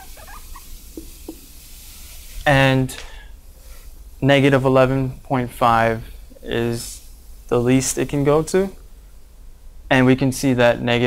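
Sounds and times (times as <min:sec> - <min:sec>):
marker squeaking on whiteboard: 0:00.0 - 0:01.4.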